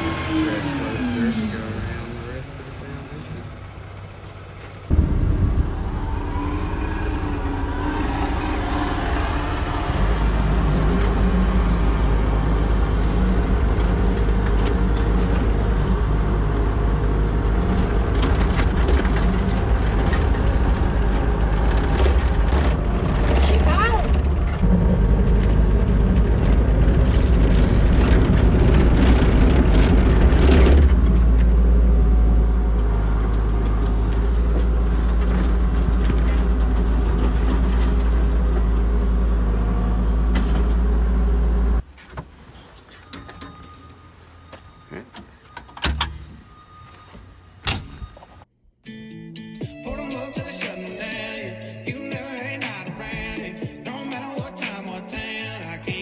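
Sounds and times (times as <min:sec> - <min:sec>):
diesel engine running: 0:00.0 - 0:41.9
high sliding squeal: 0:05.6 - 0:12.2.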